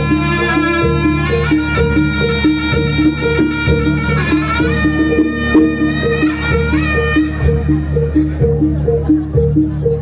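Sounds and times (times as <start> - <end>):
drums: 0.0 - 10.0
low gong drone: 0.0 - 10.0
shrill reedy wind instrument: 0.0 - 10.0.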